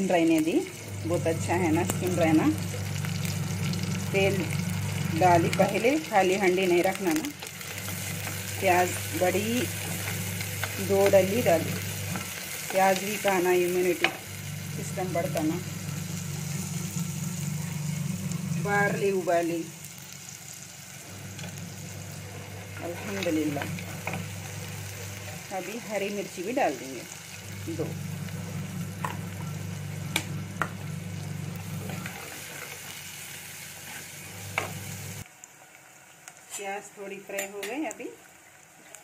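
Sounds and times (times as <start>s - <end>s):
onions sizzling in hot oil: 0.0s - 39.0s.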